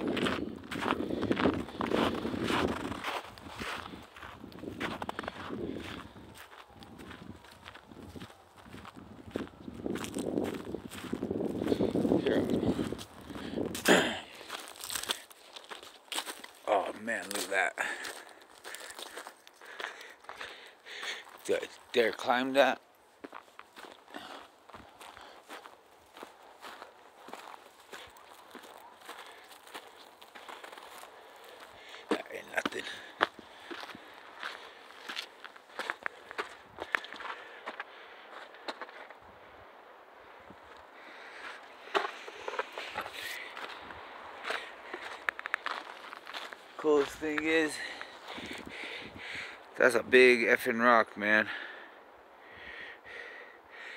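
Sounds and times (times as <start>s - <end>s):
footsteps crunching on pine needles: 0.0s - 39.2s, 40.7s - 49.0s.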